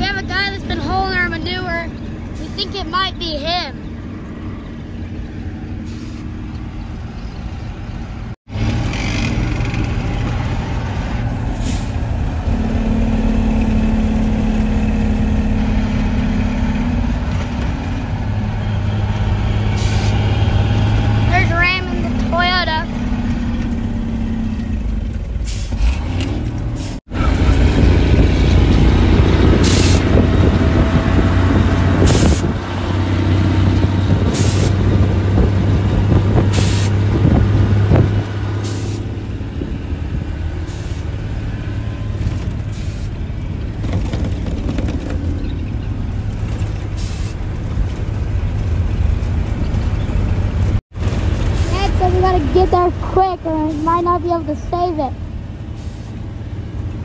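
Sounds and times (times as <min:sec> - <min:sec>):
truck engine droning under load: 0:00.0 - 0:57.0
short hisses: 0:05.8 - 0:06.3
cab rattle: 0:43.6 - 0:46.9.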